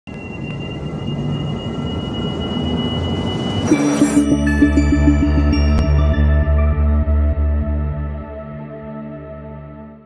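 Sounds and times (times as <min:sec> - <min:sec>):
thin steady high tone: 0:00.2 - 0:06.9
low rumbling drone: 0:00.9 - 0:10.0
intro music: 0:03.7 - 0:10.0.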